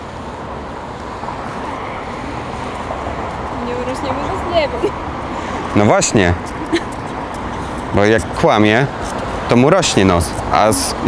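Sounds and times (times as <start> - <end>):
hum of passing cars: 0.0 - 11.0.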